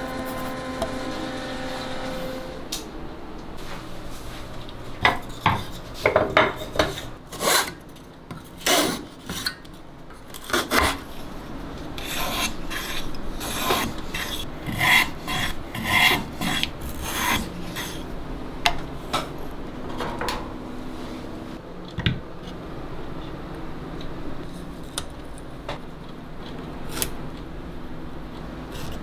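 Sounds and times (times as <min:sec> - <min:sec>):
sharpener rasping on wood: 0:12.0 - 0:18.0.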